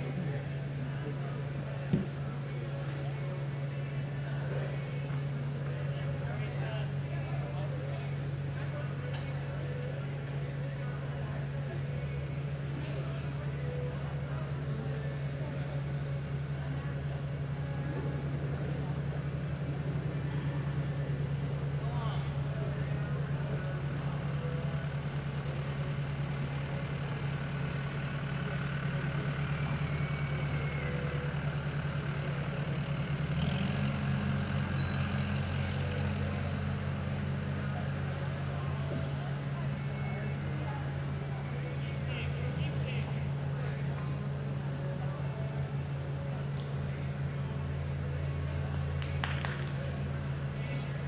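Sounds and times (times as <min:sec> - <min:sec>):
low mechanical hum: 0:00.0 - 0:51.0.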